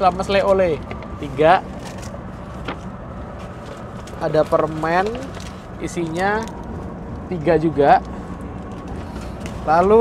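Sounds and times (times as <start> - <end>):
road and engine rumble inside coach: 0.0 - 10.0.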